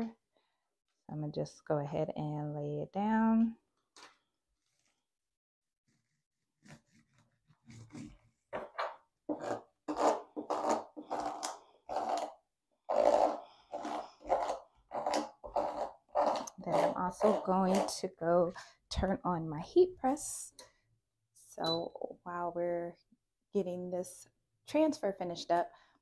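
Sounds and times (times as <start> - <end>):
plastic scraper scraping tape: 9.3 - 18.0.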